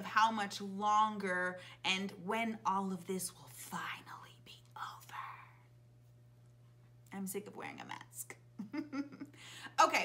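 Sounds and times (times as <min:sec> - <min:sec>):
faint steady hum: 0:00.0 - 0:10.0
woman whispering: 0:03.9 - 0:05.7.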